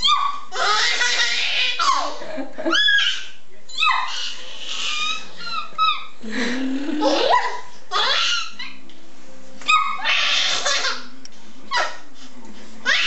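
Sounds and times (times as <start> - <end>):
baby laughing and squealing: 0.0 - 6.2, 7.0 - 8.8, 9.7 - 11.1.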